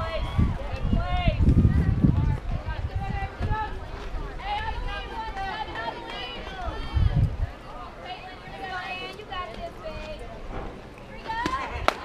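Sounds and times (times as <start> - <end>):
children calling and chanting: 0.0 - 12.0.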